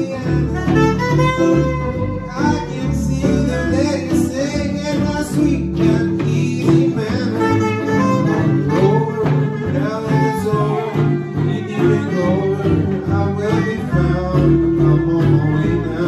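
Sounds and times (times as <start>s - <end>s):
plucked upright bass: 0.0s - 16.0s
strummed acoustic guitars: 0.0s - 16.0s
soprano saxophone melody: 0.4s - 2.8s, 7.3s - 13.4s.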